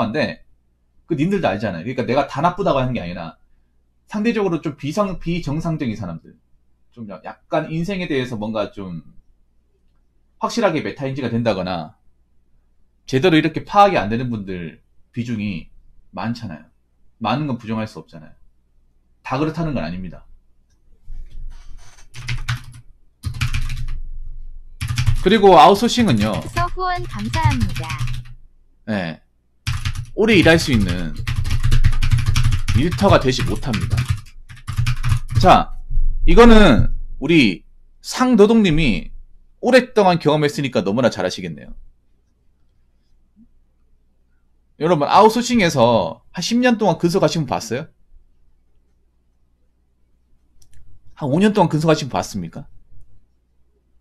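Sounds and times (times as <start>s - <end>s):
faint low hum: 0.0s - 54.0s
keyboard typing: 21.8s - 24.0s, 24.8s - 28.4s, 29.7s - 35.5s.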